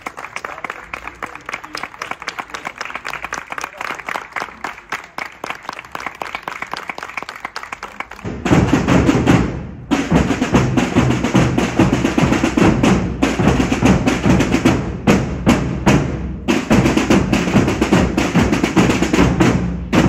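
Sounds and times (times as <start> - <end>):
crowd clapping: 0.0 - 8.4
marching drums beating: 8.2 - 20.0.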